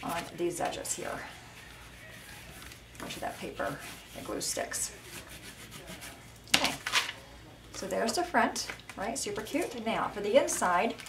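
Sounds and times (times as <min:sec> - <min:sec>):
bone folder scraping paper: 0:00.0 - 0:06.2.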